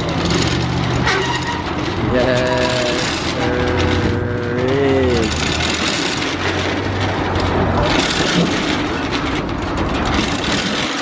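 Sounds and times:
steel shutter being raised: 0.0 - 11.0.

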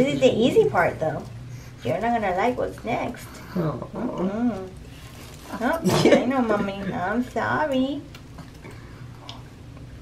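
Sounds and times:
room hum: 0.0 - 10.0.

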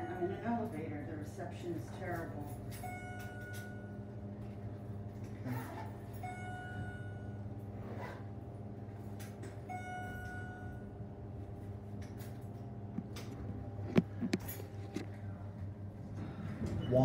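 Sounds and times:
elevator hum: 0.0 - 17.0
elevator chime: 2.1 - 8.1, 8.8 - 12.6, 16.7 - 17.0.

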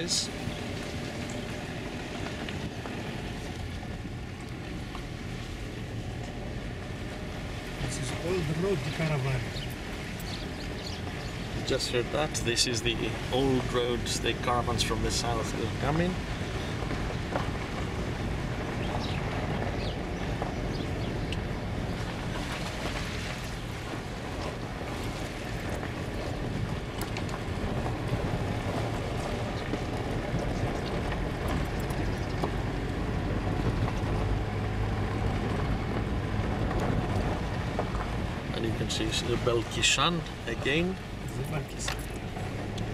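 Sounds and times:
car engine running: 0.0 - 42.9
tyres rolling on gravel: 0.0 - 42.9.

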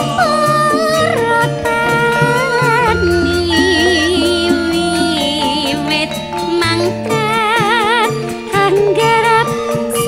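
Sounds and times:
woman singing with vibrato: 0.0 - 9.6
band accompaniment: 0.0 - 10.0.

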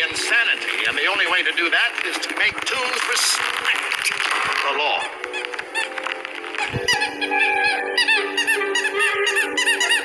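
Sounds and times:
high squeaky honks: 6.6 - 10.0.

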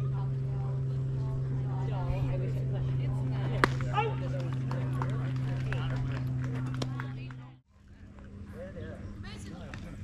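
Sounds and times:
steady low hum: 0.0 - 10.0
baseball bat cracking ball: 3.5 - 4.6
people shouting: 3.9 - 4.3.

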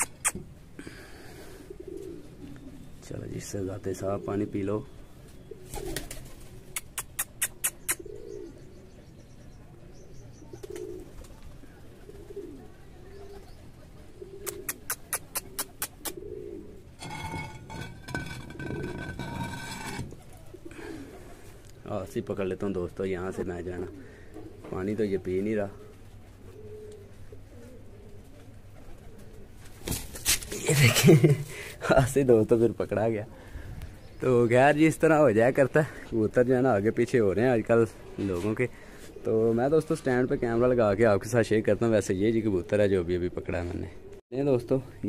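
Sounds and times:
pigeons cooing: 0.0 - 45.0.

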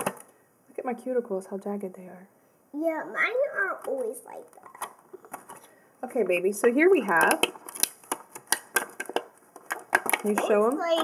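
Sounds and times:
plastic pieces clicking: 7.2 - 11.0.

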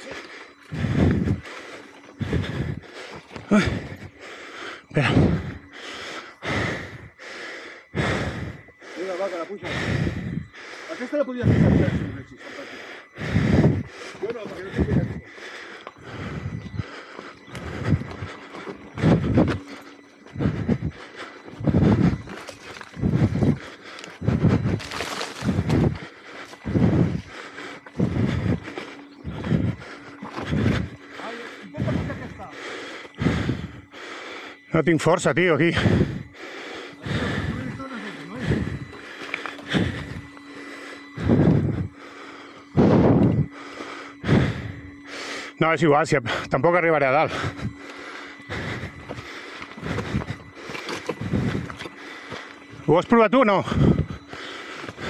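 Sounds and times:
grunting breaths: 0.0 - 55.0
person breathing hard: 0.0 - 55.0.

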